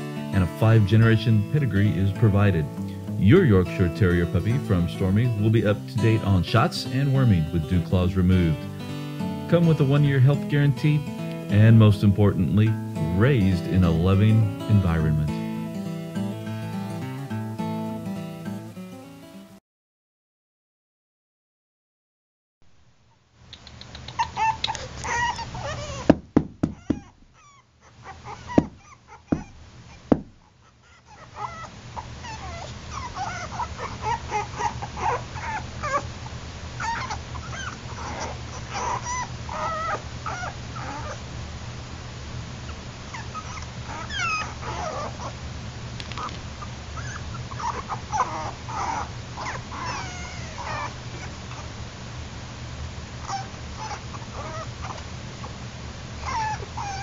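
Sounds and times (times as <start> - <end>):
puppies whimpering: 0.1 - 8.7, 23.9 - 30.0, 30.6 - 36.1, 36.8 - 41.2, 42.7 - 45.4, 46.2 - 51.8, 53.2 - 55.6, 56.2 - 57.0
sharp knocks: 26.1 - 27.3, 28.6 - 30.4.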